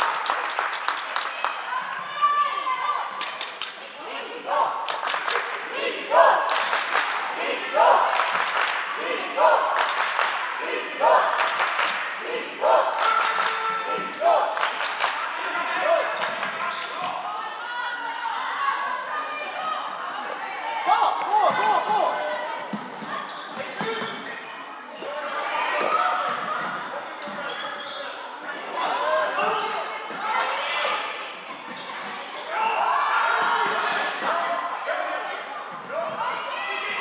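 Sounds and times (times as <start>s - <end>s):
players' voices: 0.0s - 37.0s
shoe squeak: 23.2s - 25.1s, 27.1s - 28.2s.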